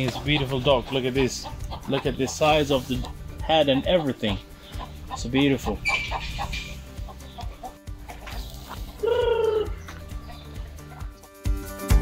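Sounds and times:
background music: 0.0 - 12.0
chicken call: 8.6 - 9.8.

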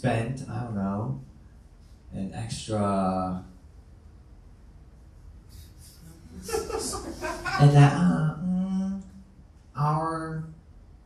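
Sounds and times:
person speaking: 5.9 - 9.1
chuckling laughter: 6.3 - 8.0.

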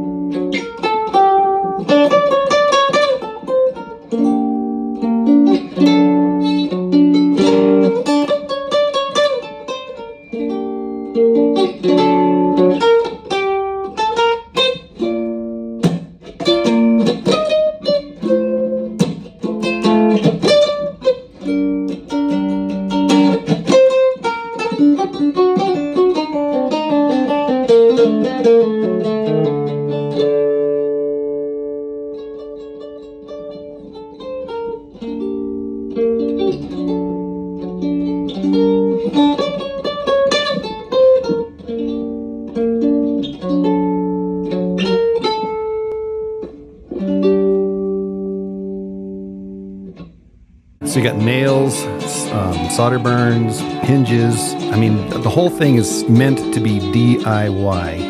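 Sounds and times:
cigar box guitar playing: 0.0 - 58.0.

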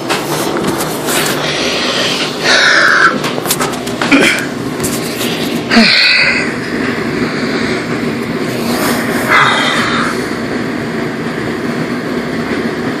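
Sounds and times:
steady rumbling noise: 0.0 - 13.0
breathy exhalation: 9.2 - 10.3.

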